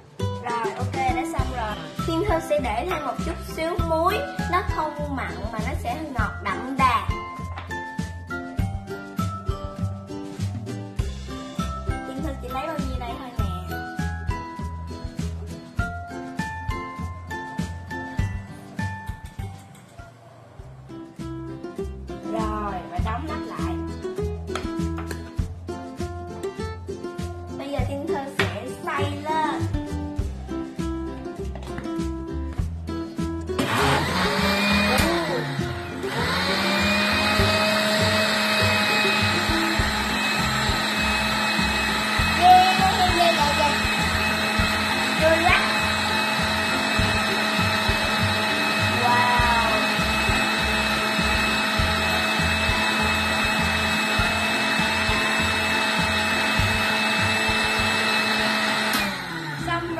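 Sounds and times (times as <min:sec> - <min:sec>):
blender motor whining: 0:33.6 - 0:59.9.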